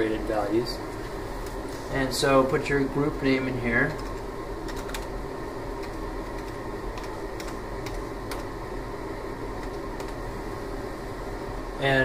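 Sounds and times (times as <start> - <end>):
steady background hum: 0.0 - 12.0
keyboard keys tapping: 3.9 - 5.1, 5.8 - 8.5.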